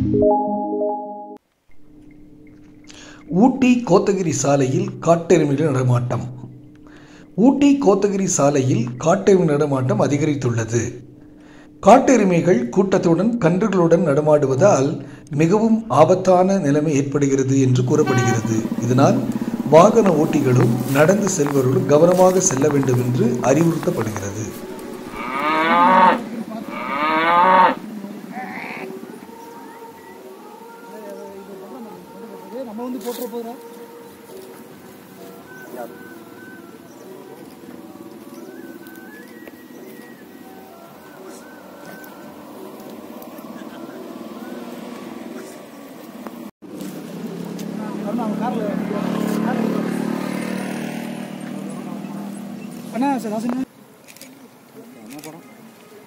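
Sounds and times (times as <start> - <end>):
vehicle engine passing: 17.2 - 28.8, 42.1 - 53.0
bison lowing: 17.6 - 29.6
faint voices: 17.8 - 46.0.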